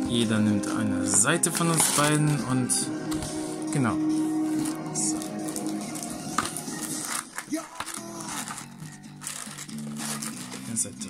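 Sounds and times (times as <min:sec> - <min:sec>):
background music: 0:00.0 - 0:11.0
foil packs crinkling: 0:01.4 - 0:02.4, 0:04.4 - 0:11.0.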